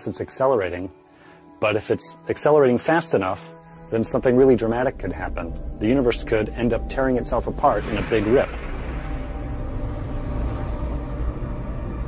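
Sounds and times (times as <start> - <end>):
deep cinematic rumble: 4.0 - 12.0.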